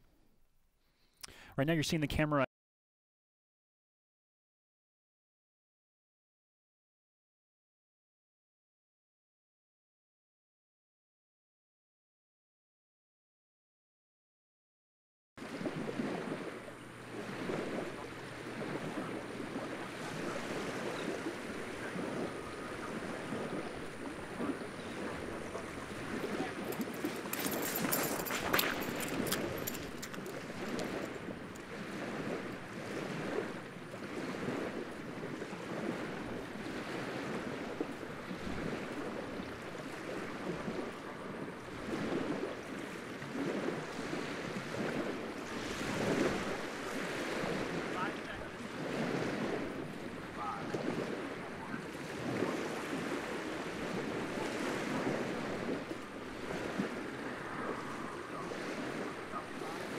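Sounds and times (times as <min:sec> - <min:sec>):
small waves lapping: 0:15.4 - 0:59.9
wind buffeting microphone: 0:15.4 - 0:59.9.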